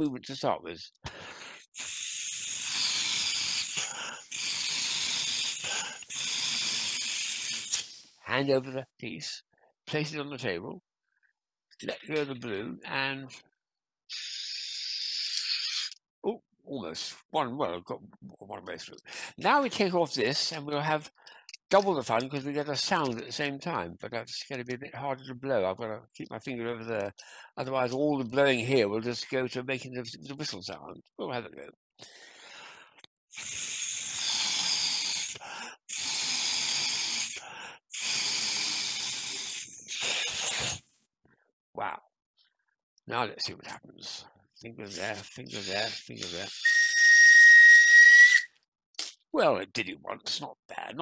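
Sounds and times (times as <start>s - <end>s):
air hissing out of balloon: 1.2s - 8.2s, 14.1s - 16.0s, 33.3s - 40.8s, 45.5s - 48.4s.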